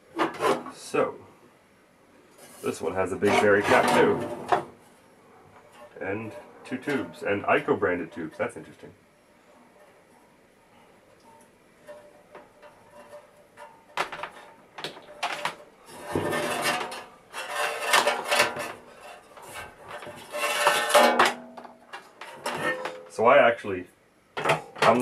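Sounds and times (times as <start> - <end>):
scraping and metallic rattling: 2.4 - 5.0, 11.1 - 23.2.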